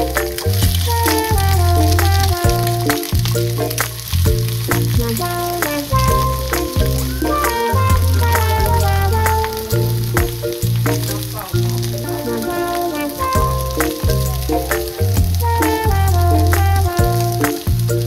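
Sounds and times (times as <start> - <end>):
background music with bass: 0.0 - 18.0
eggs sizzling in a pan: 0.0 - 18.0.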